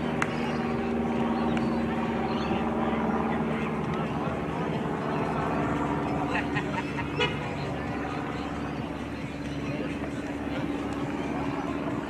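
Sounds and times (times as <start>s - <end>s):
faint voices and shouts: 0.0s - 12.0s
steady droning tone: 0.0s - 12.0s.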